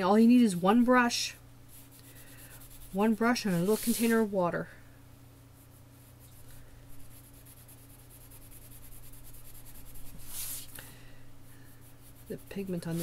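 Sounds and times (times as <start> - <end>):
faint steady hum: 0.0 - 13.0
pencil scratching on paper: 1.7 - 4.2, 6.9 - 10.7, 12.0 - 13.0.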